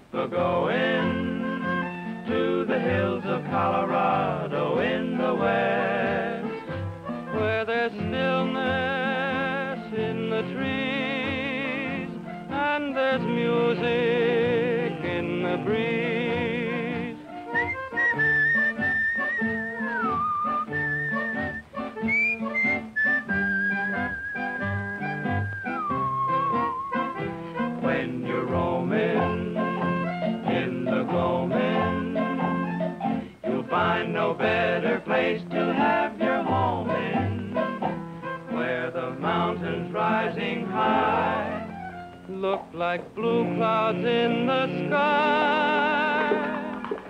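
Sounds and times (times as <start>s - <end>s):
yodeled singing: 0.0s - 47.0s
instrumental accompaniment: 0.8s - 47.0s
whistled melody: 1.1s - 2.3s, 17.3s - 27.7s, 31.6s - 33.8s, 41.1s - 42.2s
orchestral accompaniment: 17.3s - 27.8s.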